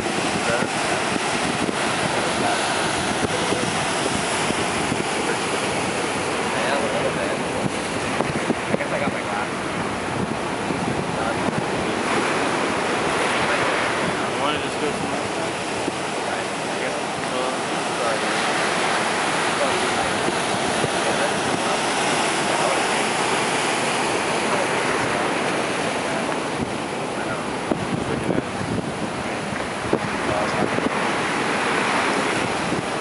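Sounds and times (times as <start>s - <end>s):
ocean surf breaking: 0.0s - 33.0s
wind buffeting microphone: 0.0s - 33.0s.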